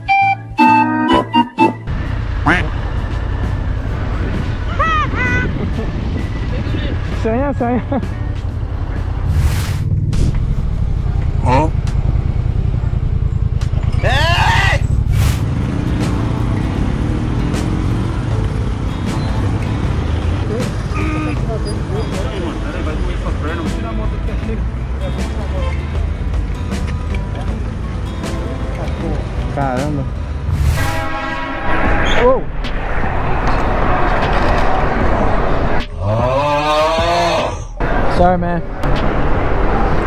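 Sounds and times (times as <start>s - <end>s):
motorcycle engine rumbling: 1.8s - 40.0s
wind on microphone: 3.9s - 7.2s
people's voices: 32.1s - 39.0s.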